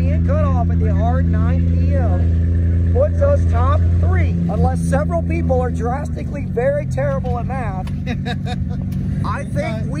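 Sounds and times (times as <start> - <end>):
car engine droning: 0.0 - 10.0
man talking: 2.9 - 10.0.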